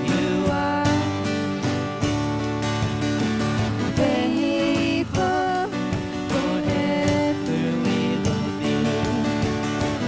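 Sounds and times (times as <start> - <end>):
acoustic guitar strumming: 0.0 - 10.0
ukulele strumming: 0.0 - 10.0.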